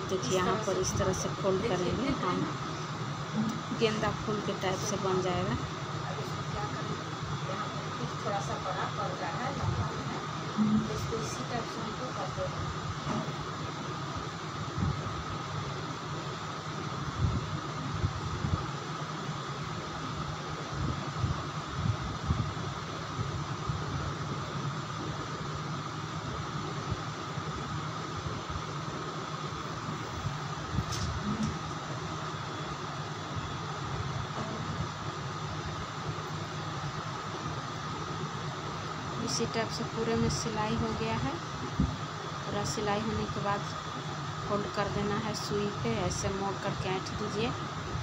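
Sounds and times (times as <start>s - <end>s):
steady machine hiss and hum: 0.0s - 48.0s.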